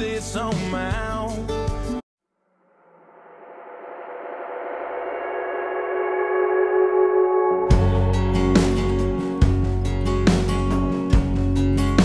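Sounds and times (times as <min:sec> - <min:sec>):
sustained ringing chord: 0:02.6 - 0:10.2
beat with drums and heavy bass: 0:07.7 - 0:12.0.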